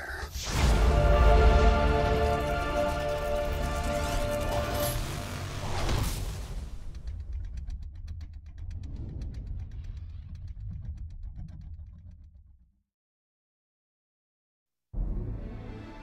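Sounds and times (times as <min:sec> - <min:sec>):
trailer music: 0:00.2 - 0:11.2, 0:15.0 - 0:16.0.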